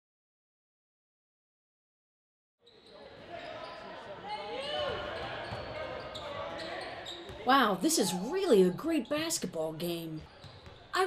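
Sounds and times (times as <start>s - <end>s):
spectators talking: 3.1s - 10.2s
basketball bouncing on court: 10.2s - 11.0s.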